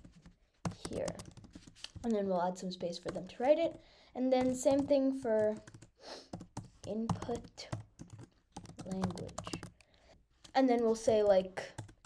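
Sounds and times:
computer keyboard typing: 0.0s - 2.2s, 2.8s - 9.9s, 10.5s - 12.0s.

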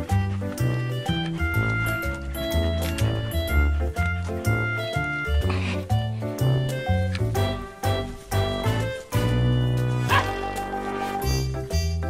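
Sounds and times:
background music: 0.0s - 12.0s
dog barking: 10.0s - 10.5s.

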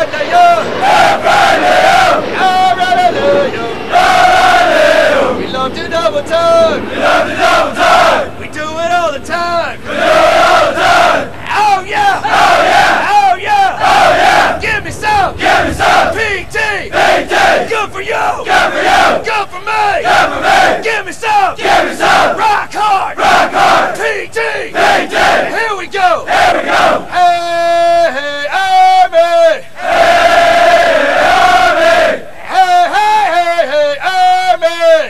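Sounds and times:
group shouting cadence chant: 9.9s - 14.6s, 29.8s - 32.3s.

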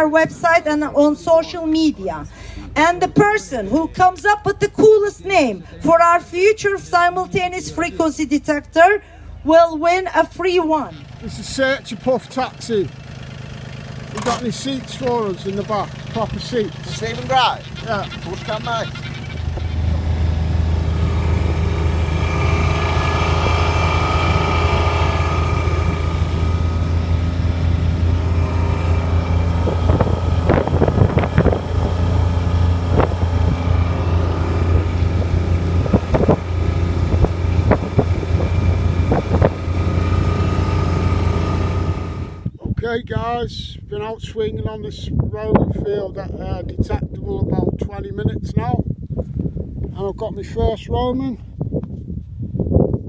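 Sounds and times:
vehicle engine droning: 0.0s - 43.0s
sharp knocks and rattles: 12.9s - 19.9s.

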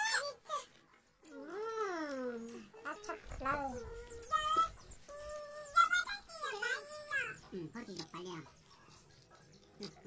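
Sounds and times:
child making wordless calls: 0.0s - 7.5s.

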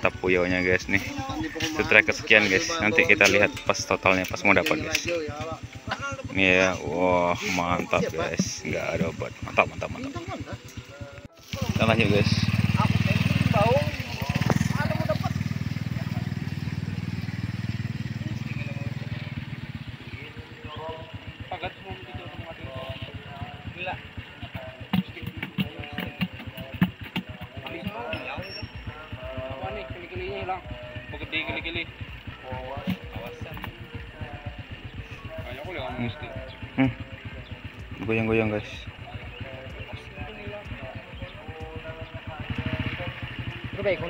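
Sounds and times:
faint voices talking: 0.0s - 44.0s
motorcycle engine passing: 0.0s - 44.0s.

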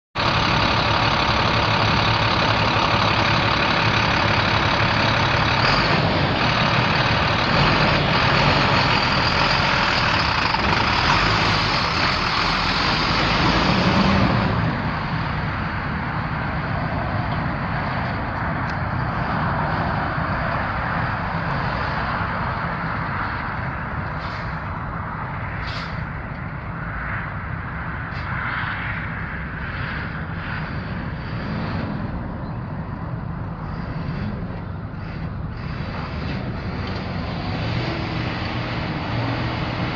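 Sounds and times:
diesel truck engine running: 0.2s - 28.3s, 28.9s - 39.9s.

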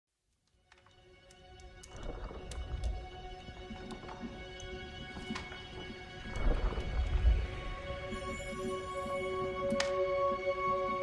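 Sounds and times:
soundtrack music sustained notes: 0.4s - 11.0s.

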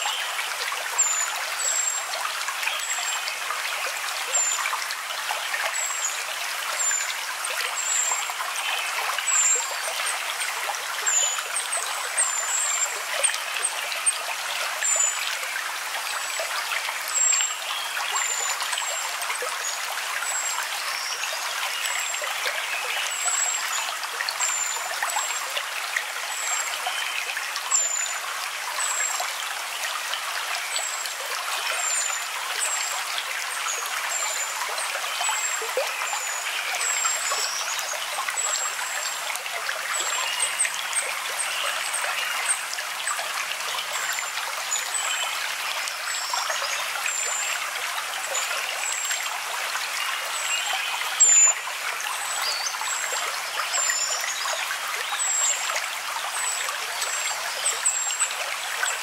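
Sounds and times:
water trickling: 0.0s - 59.0s.

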